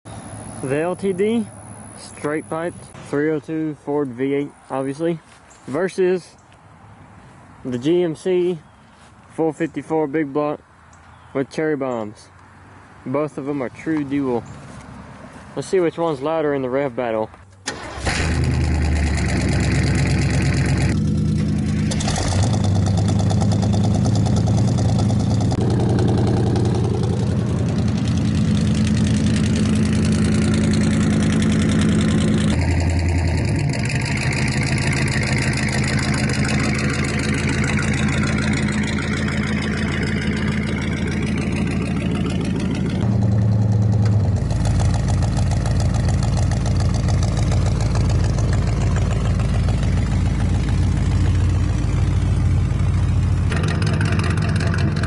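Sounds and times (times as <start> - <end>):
loud car exhaust revving: 18.0 - 55.0
truck engine idling deep pulsing: 18.0 - 55.0.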